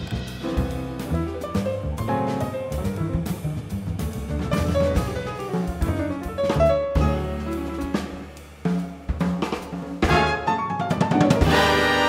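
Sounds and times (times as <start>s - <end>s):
bass drum hits: 0.0s - 10.4s
double bass notes: 0.0s - 10.6s.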